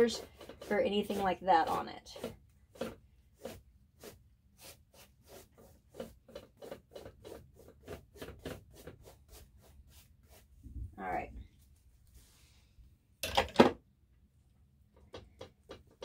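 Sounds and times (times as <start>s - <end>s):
brush swishing on canvas: 0.0s - 10.9s, 11.6s - 12.7s.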